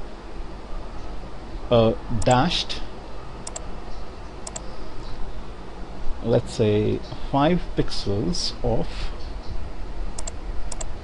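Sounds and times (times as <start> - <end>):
steady low hum: 0.0 - 11.0
computer keys or mouse clicks: 3.4 - 3.6, 4.4 - 4.7, 10.2 - 10.9.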